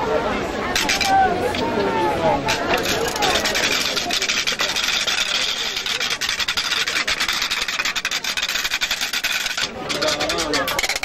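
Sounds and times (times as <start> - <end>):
crowd voices: 0.0 - 11.0
wooden rattles clattering: 0.8 - 1.7, 2.5 - 11.0.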